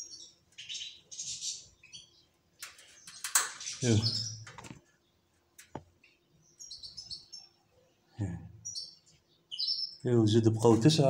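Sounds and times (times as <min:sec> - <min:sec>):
canaries chirping: 0:00.0 - 0:11.0.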